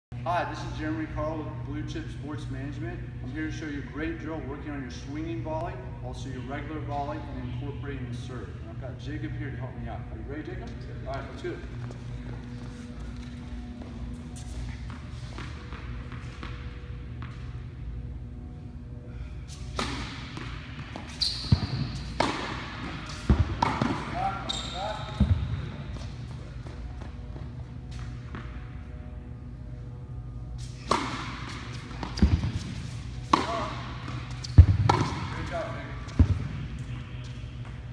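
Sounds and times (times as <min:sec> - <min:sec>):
steady hum: 0:00.1 - 0:37.9
tennis balls bouncing on court: 0:11.8 - 0:17.5, 0:19.7 - 0:28.5, 0:30.8 - 0:37.9
tennis balls struck by rackets: 0:19.7 - 0:24.5, 0:30.6 - 0:37.9.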